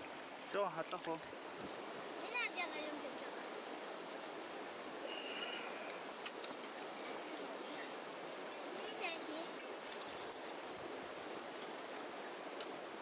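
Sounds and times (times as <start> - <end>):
stream rushing: 0.0 - 13.0.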